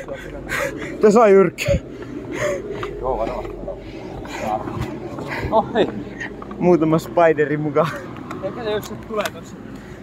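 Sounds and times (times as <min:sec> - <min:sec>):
people's voices: 0:00.0 - 0:09.7
street noise: 0:00.0 - 0:10.0.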